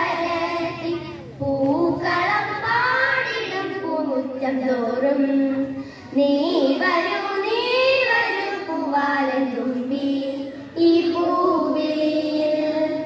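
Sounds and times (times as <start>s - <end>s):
children singing: 0.0s - 5.6s, 6.2s - 13.0s
children breathing: 5.7s - 6.2s.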